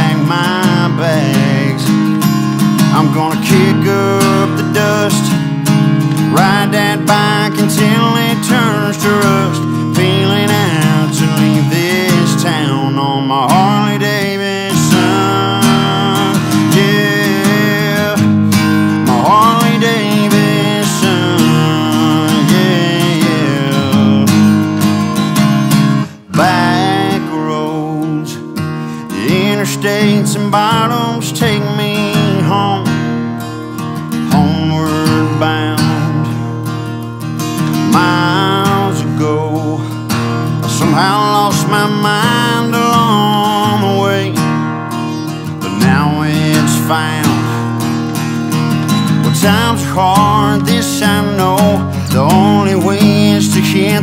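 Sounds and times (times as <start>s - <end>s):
bending lead guitar melody: 0.0s - 54.0s
strummed acoustic guitar: 0.0s - 54.0s.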